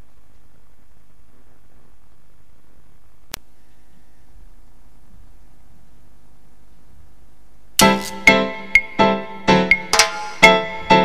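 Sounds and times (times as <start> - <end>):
faint low hum and hiss: 0.0 - 11.0
sharp click: 7.8 - 8.3.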